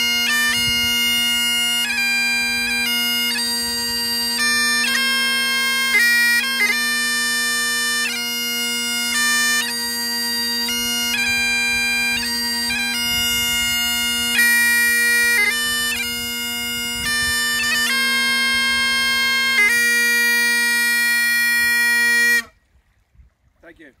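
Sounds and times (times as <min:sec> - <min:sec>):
bagpipes playing a tune: 0:00.0 - 0:22.5.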